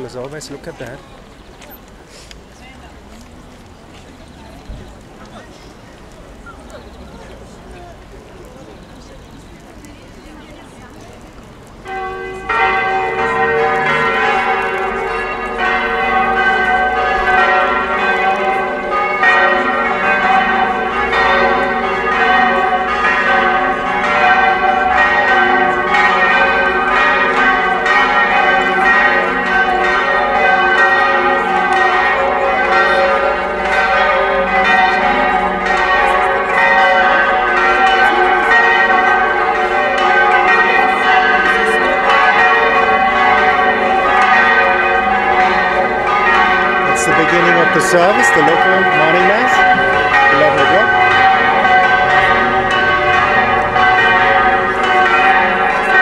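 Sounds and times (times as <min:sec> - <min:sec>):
church bells ringing: 0:00.0 - 0:01.0, 0:11.4 - 0:56.0.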